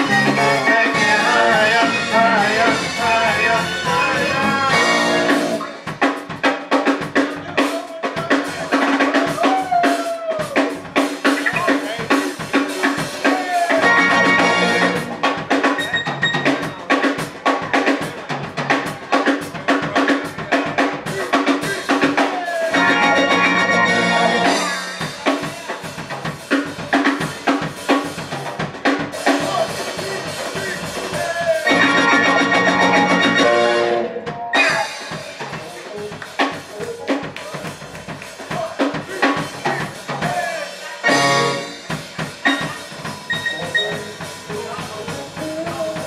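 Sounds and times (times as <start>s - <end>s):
electric guitar: 0.0s - 7.4s, 8.7s - 19.6s, 22.0s - 38.3s, 41.0s - 46.0s
drum kit beat: 0.0s - 46.0s
live band instrumental: 0.0s - 46.0s.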